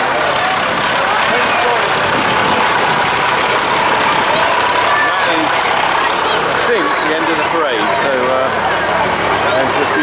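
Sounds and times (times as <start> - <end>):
crowd voices: 0.0 - 10.0
tractor engine running: 0.0 - 10.0.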